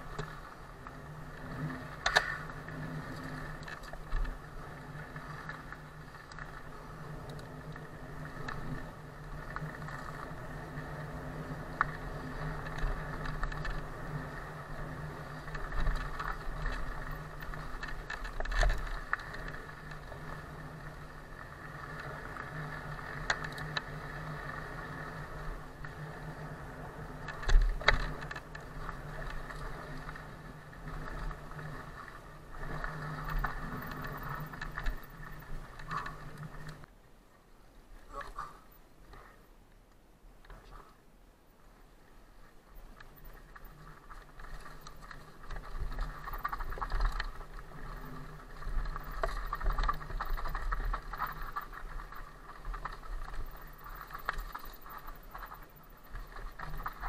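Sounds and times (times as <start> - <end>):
bike chain and frame rattle: 0.0 - 36.9, 42.8 - 57.0.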